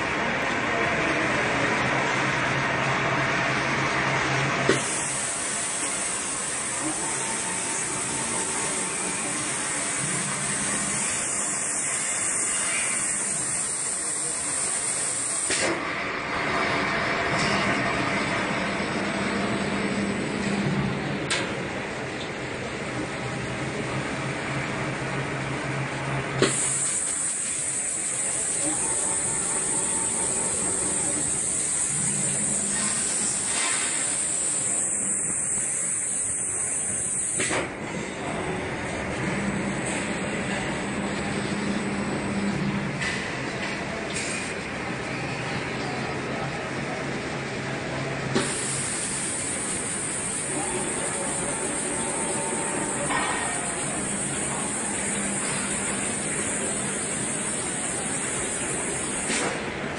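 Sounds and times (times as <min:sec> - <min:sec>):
machine noise: 0:00.0 - 0:21.4, 0:26.3 - 0:45.8, 0:48.2 - 0:59.9
pneumatic air hiss: 0:04.7 - 0:15.8, 0:26.4 - 0:37.7, 0:48.3 - 0:59.6.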